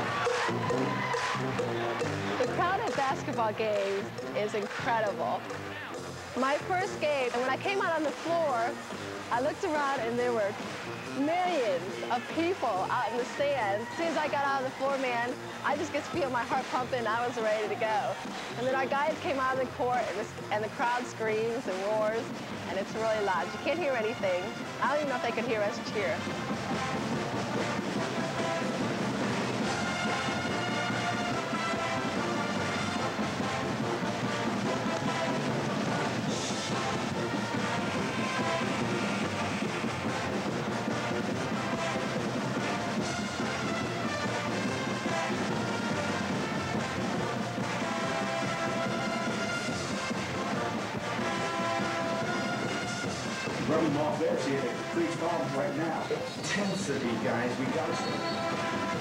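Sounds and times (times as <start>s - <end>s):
brass band music: 0.0s - 59.0s
crowd noise: 0.0s - 59.0s.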